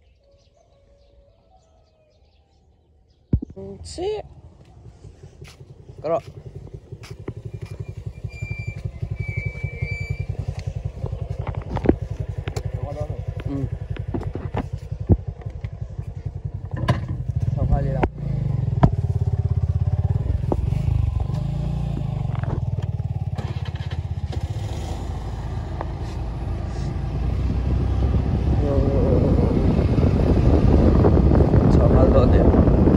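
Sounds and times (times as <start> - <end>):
scooter engine idling: 3.5 - 27.8
sharp knocks and clicks: 16.6 - 17.3.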